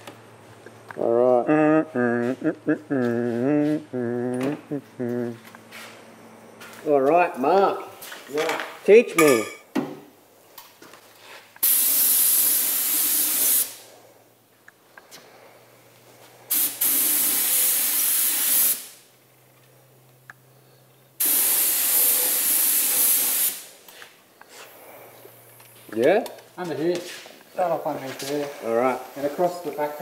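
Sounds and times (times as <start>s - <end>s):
paint spray gun hissing: 11.6s - 13.9s, 16.5s - 19.0s, 21.2s - 23.8s.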